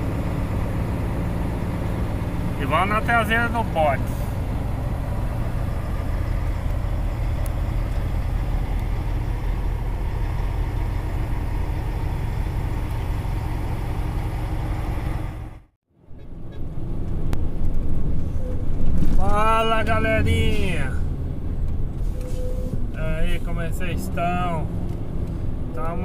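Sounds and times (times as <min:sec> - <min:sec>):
diesel truck engine droning: 0:00.0 - 0:26.0.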